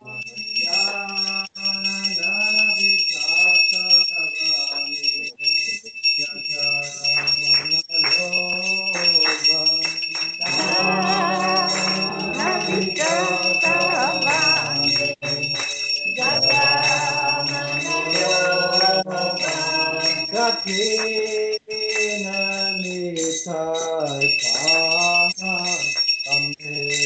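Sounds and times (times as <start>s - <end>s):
bell ringing: 0.0s - 27.0s
person singing devotional chant: 0.0s - 27.0s.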